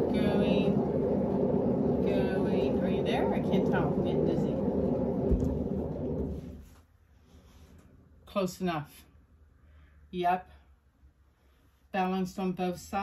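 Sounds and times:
paint spinner rumbling: 0:00.0 - 0:06.7.

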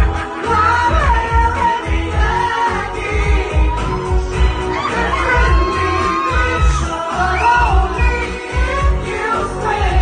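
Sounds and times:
pop song over club speakers: 0:00.0 - 0:10.0.

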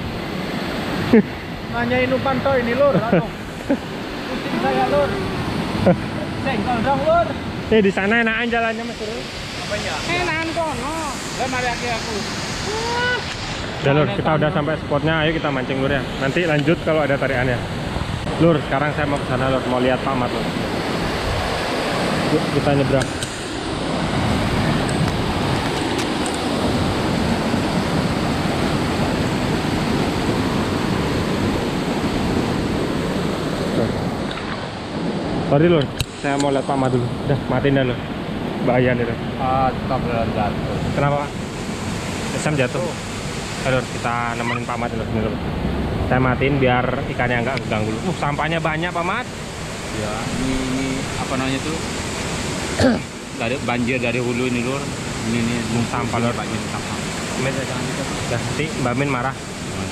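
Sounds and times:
river rushing: 0:00.0 - 0:59.9
man speaking: 0:06.2 - 0:17.6, 0:43.7 - 0:45.4, 0:50.0 - 0:51.8.

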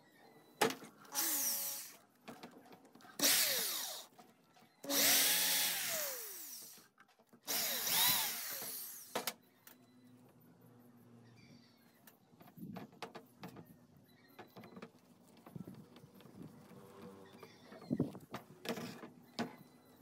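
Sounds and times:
electric drill boring plastic: 0:01.1 - 0:02.0, 0:03.2 - 0:04.1, 0:04.8 - 0:06.8, 0:07.5 - 0:09.2.

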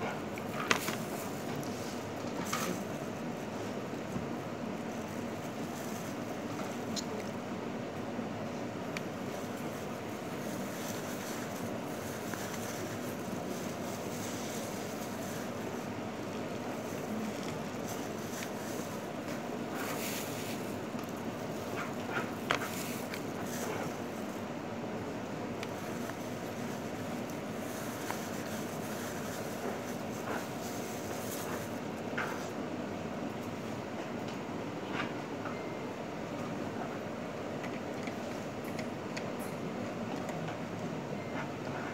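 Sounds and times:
mechanical ventilation rumble: 0:00.0 - 0:41.9
plastic food wrap crinkling: 0:25.6 - 0:31.8.

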